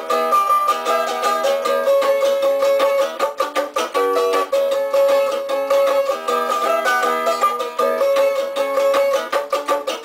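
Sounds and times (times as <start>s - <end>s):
small string instrument strummed: 0.0s - 10.0s.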